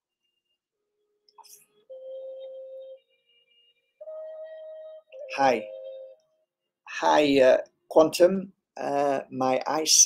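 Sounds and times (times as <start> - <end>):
steady electronic tones: 1.4 - 6.4.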